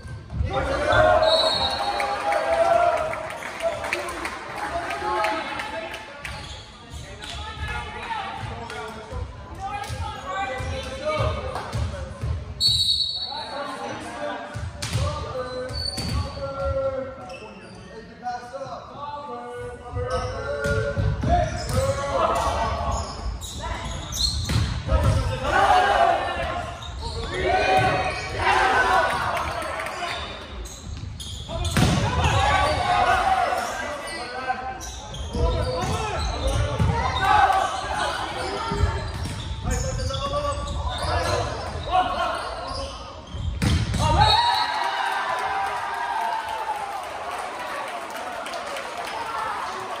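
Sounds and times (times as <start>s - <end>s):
players and spectators shouting: 0.4s - 5.7s, 25.1s - 30.2s, 32.0s - 34.6s.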